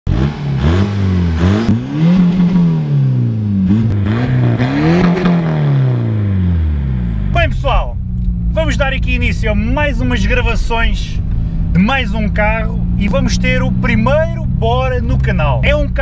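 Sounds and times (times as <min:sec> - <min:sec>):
diesel engine revving: 0:00.1 - 0:16.0
man talking: 0:07.3 - 0:16.0.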